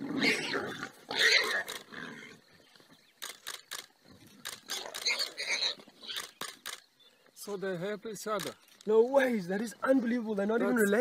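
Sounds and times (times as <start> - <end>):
wild boar squealing: 0.0 - 2.4, 4.7 - 6.3
sharp clicks: 1.6 - 1.9, 3.2 - 5.3, 6.1 - 6.9, 8.3 - 9.0.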